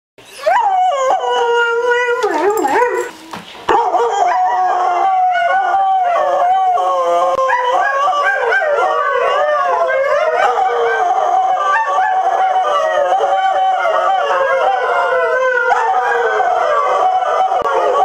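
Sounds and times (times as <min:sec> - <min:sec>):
dog howling: 0:00.3 - 0:18.0.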